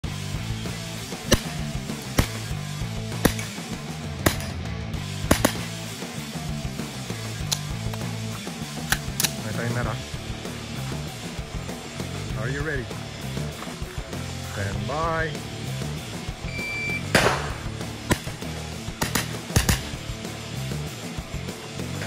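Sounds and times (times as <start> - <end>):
background music: 0.0 - 22.0
carbine gunshots: 1.2 - 2.5, 3.2 - 3.6, 4.2 - 5.9, 8.8 - 9.5, 17.0 - 20.1.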